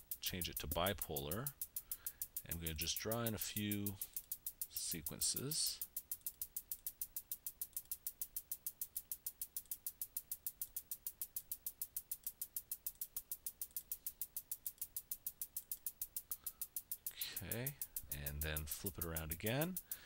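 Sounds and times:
synthesised hi-hat ticks: 0.0 - 20.0.

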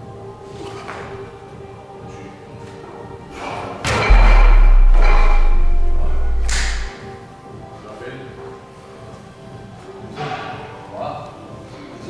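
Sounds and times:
steady low rumble: 4.1 - 6.9.

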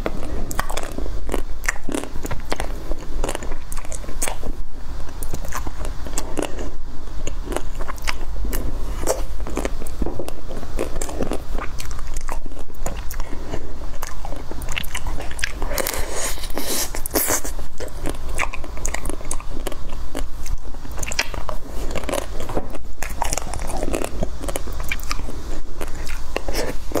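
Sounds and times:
soft wet chewing: 0.0 - 27.0.

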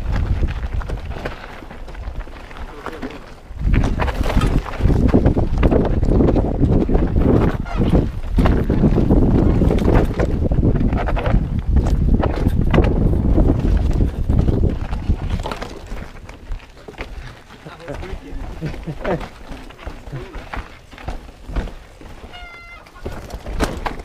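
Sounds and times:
bike clattering over rocks: 0.1 - 24.0.

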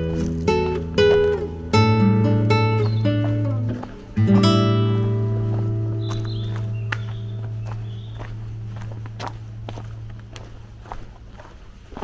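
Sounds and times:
acoustic guitar chord ringing: 0.0 - 6.1
footsteps on dirt trail: 0.0 - 12.0.

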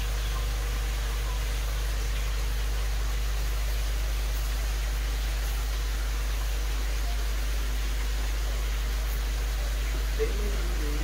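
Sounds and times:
deep mechanical hum: 0.0 - 11.0.

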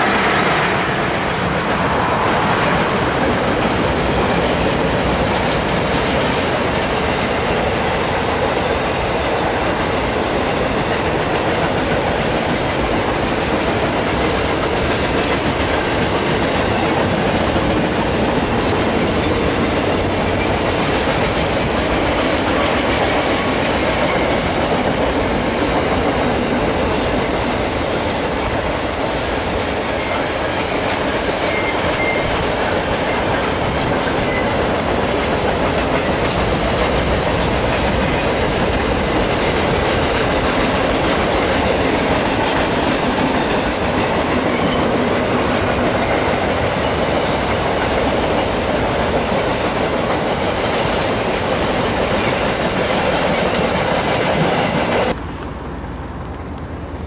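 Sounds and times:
train wheels rumbling on rails: 0.0 - 57.0
wheel squeals: 31.4 - 33.3, 34.0 - 34.7.

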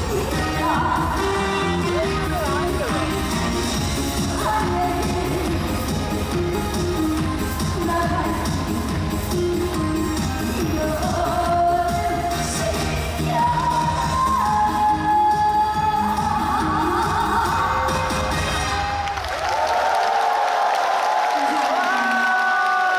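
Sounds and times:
woman singing over backing track: 0.0 - 18.3
crowd cheering: 18.5 - 22.9.

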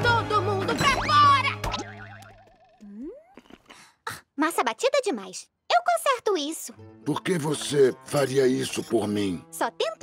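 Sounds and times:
wobbling boing sound effect: 1.6 - 3.4.

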